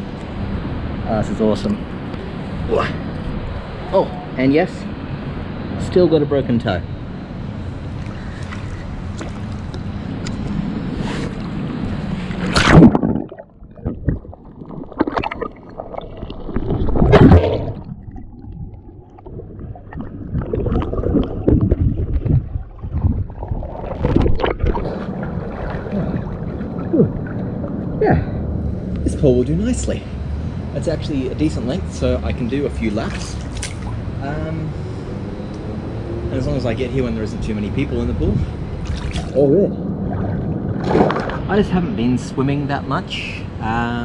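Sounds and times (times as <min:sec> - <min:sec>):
pool water splashing: 0:07.8 - 0:27.9, 0:38.8 - 0:41.9
underwater gurgling: 0:07.9 - 0:28.0, 0:38.8 - 0:41.5.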